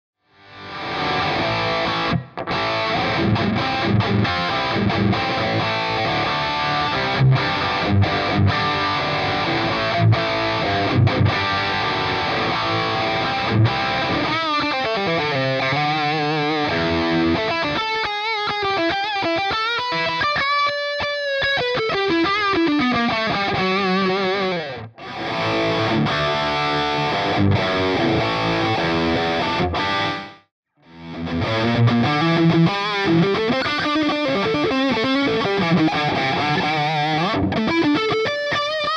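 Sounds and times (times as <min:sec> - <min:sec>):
distorted electric guitar: 0:00.3 - 0:38.9.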